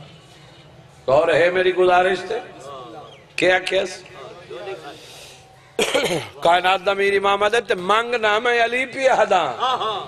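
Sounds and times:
man clearing his throat: 0:05.8 - 0:06.4.

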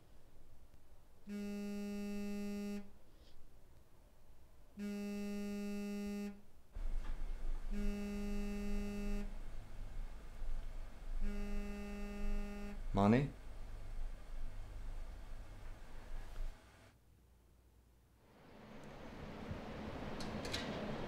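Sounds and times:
low hum and room noise: 0:00.0 - 0:21.0
low buzzy electronic tone: 0:01.3 - 0:02.9, 0:04.8 - 0:06.4, 0:07.7 - 0:09.4, 0:11.2 - 0:12.8.

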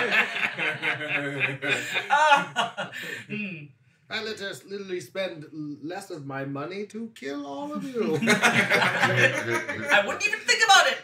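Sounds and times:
people laughing: 0:00.0 - 0:03.3, 0:07.8 - 0:10.6
people speaking: 0:00.0 - 0:11.0.

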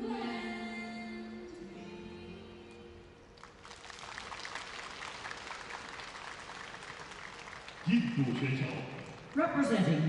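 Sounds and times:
audience applauding: 0:03.4 - 0:10.0.

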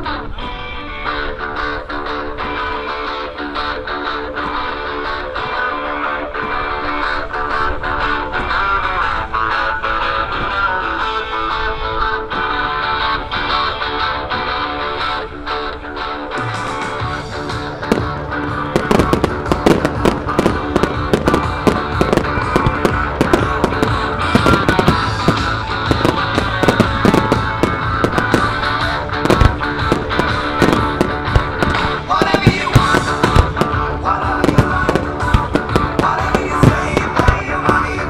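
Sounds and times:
fireworks bangs and crackles: 0:00.0 - 0:38.0
loud music: 0:00.0 - 0:38.0.

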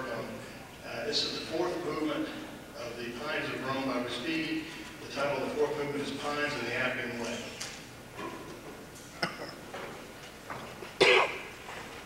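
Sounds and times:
person coughing: 0:11.0 - 0:11.5.

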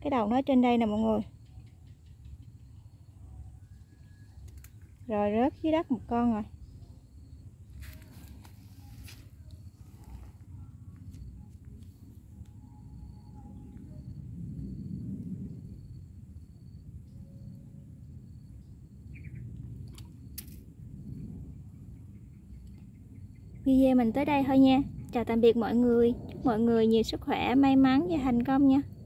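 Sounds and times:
wind rumble: 0:00.0 - 0:29.0
insect chirping: 0:00.1 - 0:29.0.

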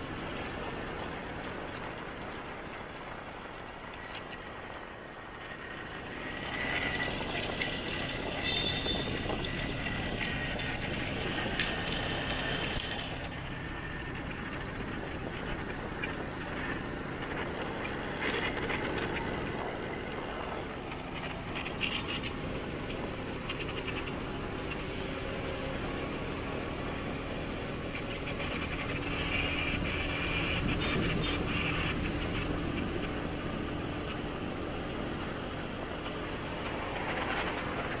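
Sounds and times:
motorbike engine: 0:00.0 - 0:38.0
motorbikes and cars passing: 0:00.0 - 0:38.0
tyres on the road: 0:00.0 - 0:38.0.

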